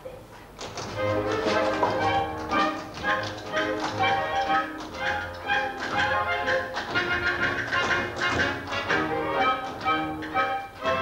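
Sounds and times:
sharp taps on the beat: 0.6s - 9.0s.

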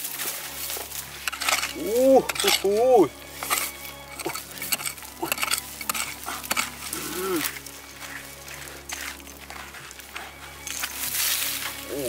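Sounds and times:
gloved hands rustling in dirt: 0.0s - 12.0s
metal tool scraping stony soil: 0.0s - 12.0s.

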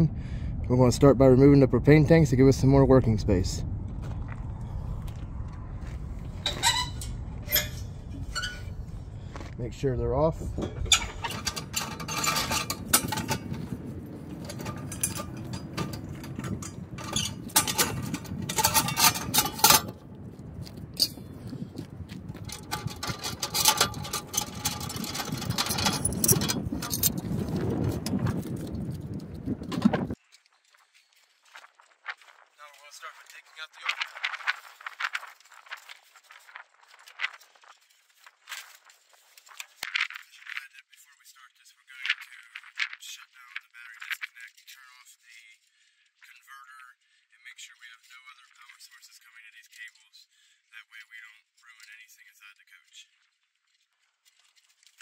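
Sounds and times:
low rumble: 0.0s - 30.2s
metal clinks and scrapes: 6.4s - 8.9s, 10.4s - 21.6s, 22.3s - 30.2s.

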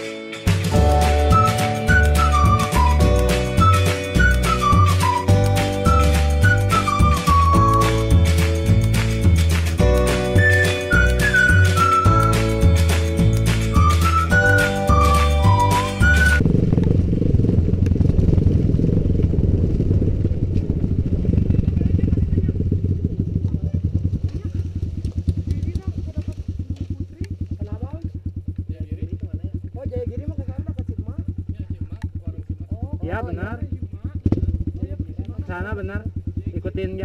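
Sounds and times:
motorcycle engine running: 0.4s - 37.0s.

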